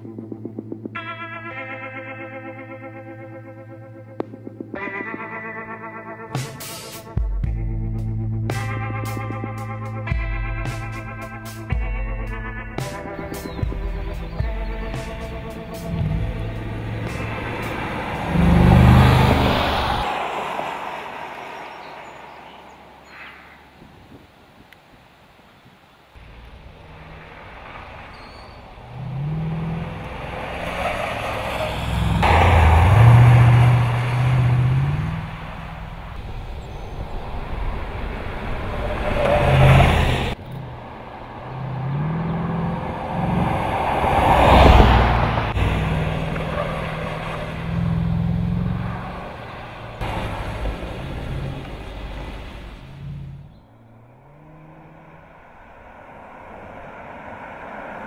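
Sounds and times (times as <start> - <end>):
engine accelerating through gears: 13.4 - 22.5, 26.2 - 58.0.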